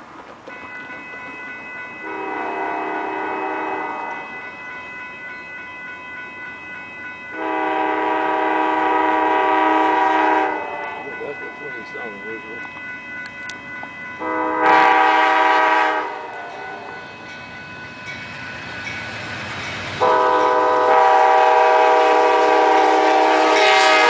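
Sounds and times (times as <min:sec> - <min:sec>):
locomotive horn chord: 0:02.0 - 0:04.3, 0:07.3 - 0:11.2, 0:14.2 - 0:17.0, 0:20.0 - 0:24.0.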